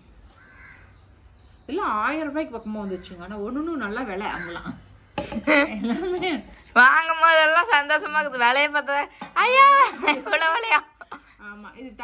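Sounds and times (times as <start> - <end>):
distant bird call: 0.3 - 1.6
woman speaking: 1.7 - 4.8, 5.7 - 12.0.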